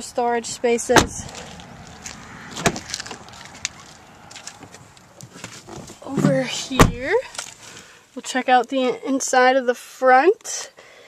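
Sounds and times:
car door latch clunk: 0.9s - 1.3s.

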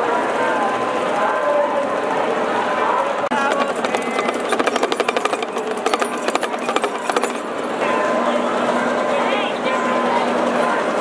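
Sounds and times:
hourglass drum rattled: 3.3s - 9.1s.

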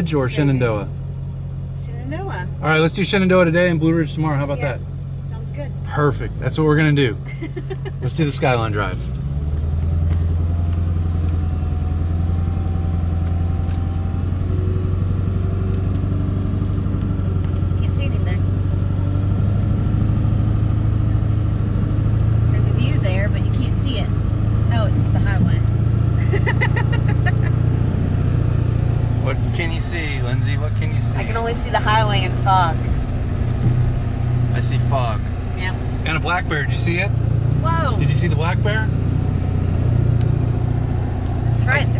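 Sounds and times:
truck engine drone: 0.0s - 41.9s
tyres on road: 0.0s - 41.9s.

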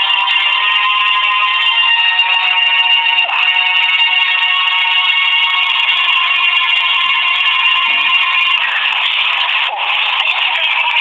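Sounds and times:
sustained high-pitched music tones: 0.0s - 11.0s.

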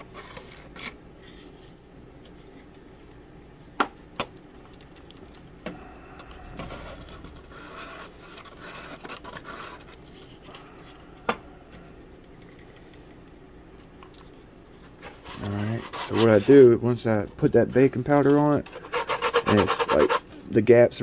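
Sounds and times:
hands rubbing on wooden model: 15.2s - 17.4s, 18.8s - 20.2s.

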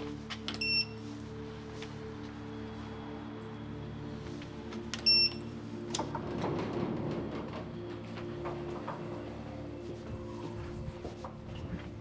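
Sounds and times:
low background music: 0.0s - 12.0s
intercom beep: 0.6s - 1.0s, 5.0s - 5.5s.

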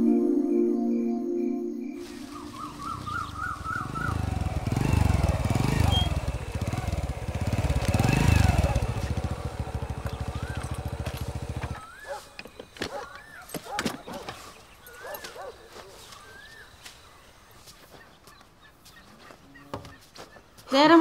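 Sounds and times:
bird chirps: 1.0s - 20.8s
motorcycle engine revving: 2.0s - 17.3s.

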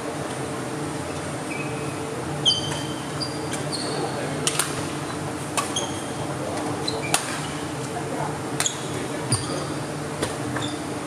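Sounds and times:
ventilation hum and hiss: 0.0s - 11.0s.

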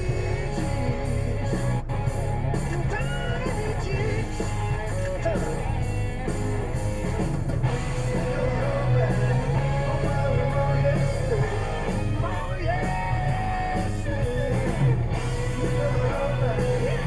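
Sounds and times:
rock music with guitar: 0.0s - 17.0s.

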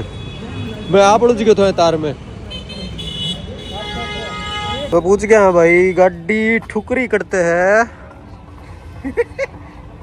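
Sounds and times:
busy street traffic: 0.0s - 10.0s
vehicle horn sounding: 2.5s - 5.1s.

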